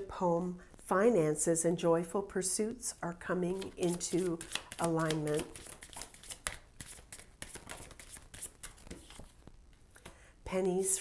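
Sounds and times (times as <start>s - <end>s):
cards being shuffled by hand: 3.5s - 10.2s.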